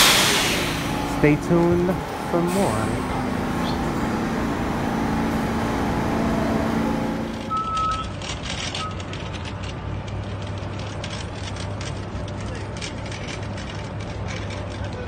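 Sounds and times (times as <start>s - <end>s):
subway train humming: 0.0s - 8.0s
bus engine humming: 0.0s - 15.0s
street traffic: 0.0s - 15.0s
clatter: 6.8s - 15.0s.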